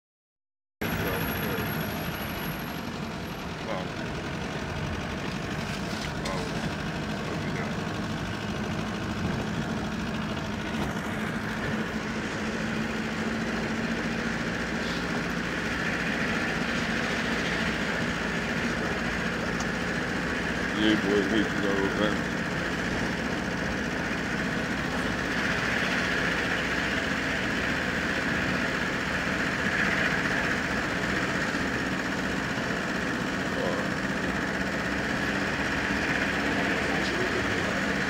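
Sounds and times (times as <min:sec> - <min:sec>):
car engine and road noise: 0:00.8 - 0:38.0.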